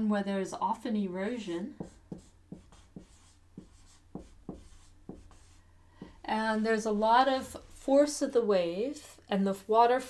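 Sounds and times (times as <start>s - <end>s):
marker writing on whiteboard: 1.7s - 6.3s.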